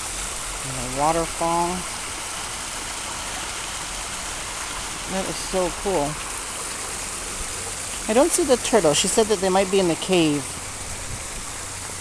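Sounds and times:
water spilling over rocks: 0:00.0 - 0:12.0.

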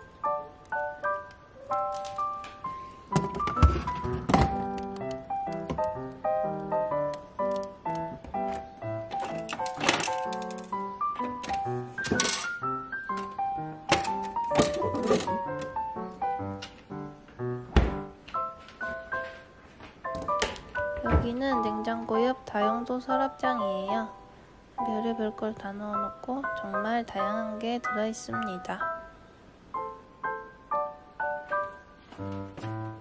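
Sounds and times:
light keyboard music: 0:00.0 - 0:33.0
plastic freezer drawers clacking: 0:03.1 - 0:05.0, 0:09.1 - 0:12.6, 0:13.2 - 0:15.8.

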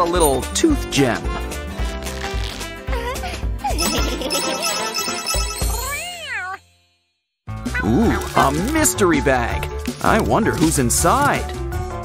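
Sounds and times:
background music: 0:00.0 - 0:06.8, 0:07.5 - 0:12.0.

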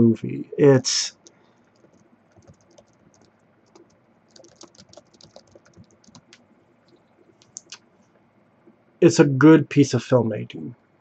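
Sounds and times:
computer keyboard typing: 0:01.2 - 0:07.8.

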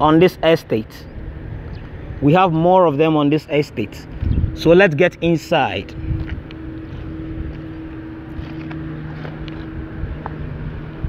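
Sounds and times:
low rumbling noise: 0:00.0 - 0:11.0
machine hum: 0:00.0 - 0:11.0.

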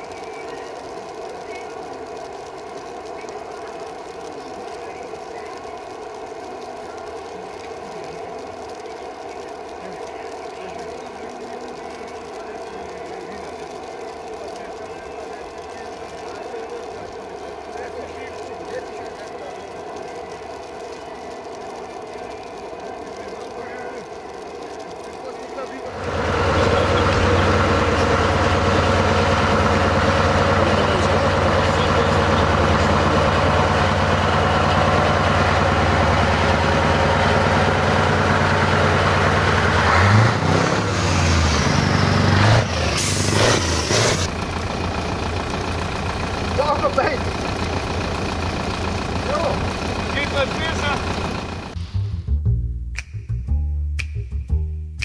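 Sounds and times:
diesel truck engine running: 0:00.0 - 0:52.3
compressed air hiss: 0:40.9 - 0:44.3.

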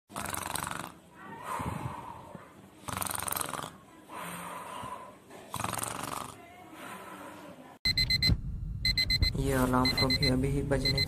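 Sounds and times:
cartoon rattling snores: 0:00.1 - 0:01.0, 0:02.8 - 0:03.8, 0:05.5 - 0:06.4.

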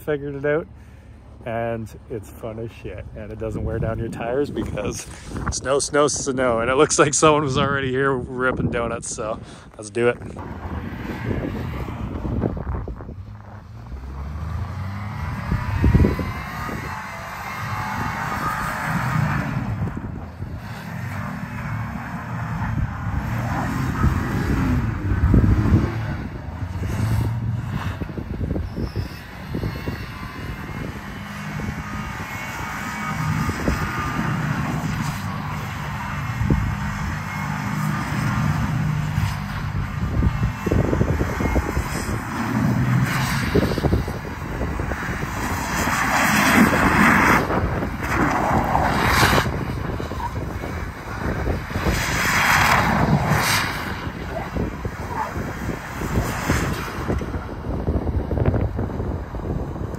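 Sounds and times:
truck engine revving: 0:10.0 - 0:59.9
tyres spinning in snow: 0:10.0 - 0:59.9.

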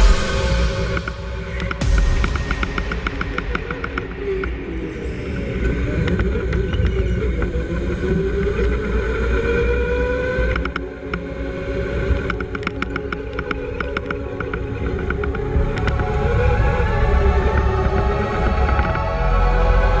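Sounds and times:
sharp clicks: 0:12.2 - 0:16.1.

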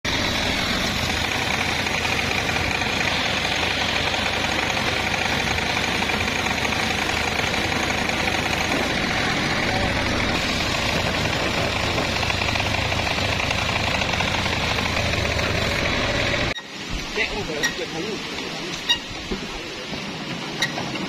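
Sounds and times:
circular saw cutting wood: 0:00.1 - 0:16.7.

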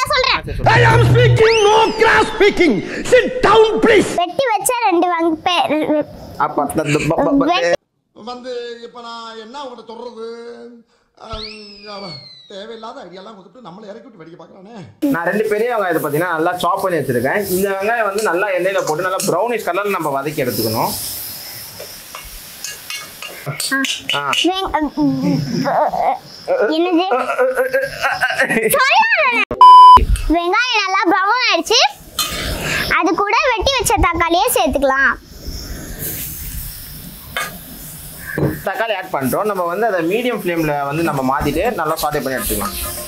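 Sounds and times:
person talking: 0:00.0 - 0:04.2
tomatoes sizzling in a wok: 0:15.0 - 0:27.1, 0:30.6 - 0:43.0
metal spoon scraping a pan: 0:18.1 - 0:19.6, 0:22.1 - 0:24.4, 0:32.2 - 0:32.6, 0:41.9 - 0:43.0.

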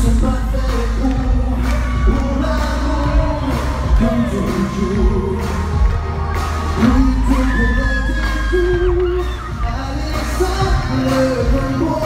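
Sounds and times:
crowd noise: 0:00.0 - 0:12.0
high held singing voice: 0:00.0 - 0:12.0
pop song over sound system: 0:00.0 - 0:12.0.

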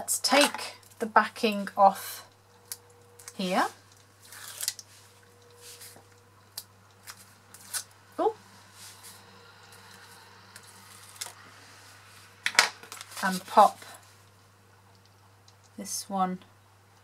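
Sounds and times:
paper liner rustling and crackling: 0:03.9 - 0:06.2, 0:12.4 - 0:14.0.

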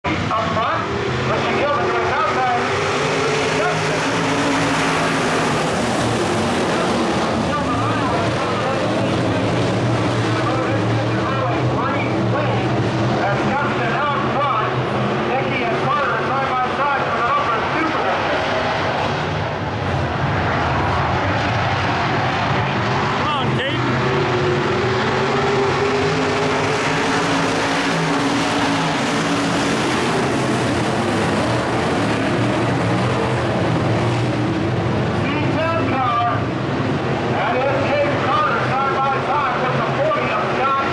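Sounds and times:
race car engines droning: 0:00.0 - 0:40.9
spectators talking: 0:00.1 - 0:33.7, 0:35.1 - 0:40.9.

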